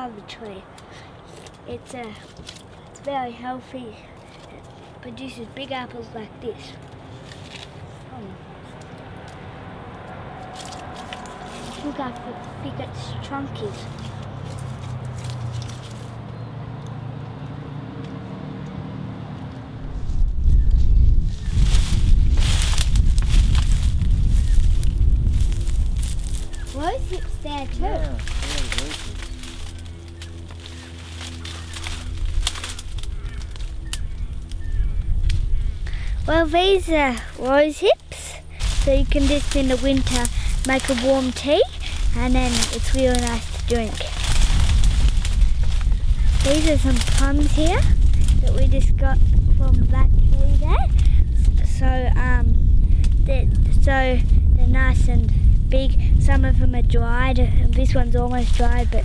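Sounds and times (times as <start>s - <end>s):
brambles rustling and crunching: 0.0s - 3.2s, 3.9s - 5.7s, 6.4s - 16.3s, 21.1s - 51.7s, 57.8s - 59.0s
leafy branches crackling: 0.0s - 18.2s, 19.4s - 59.0s
low steady hum: 0.0s - 59.0s
wind rumble on microphone: 19.5s - 59.0s.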